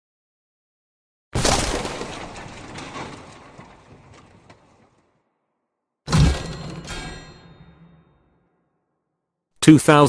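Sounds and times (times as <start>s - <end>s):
small blocks tumbling: 1.4s - 5.2s
heavy crash: 6.1s - 8.3s.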